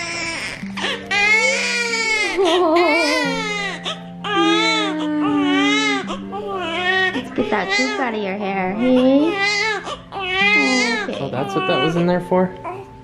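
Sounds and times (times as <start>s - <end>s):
baby crying: 0.0s - 13.0s.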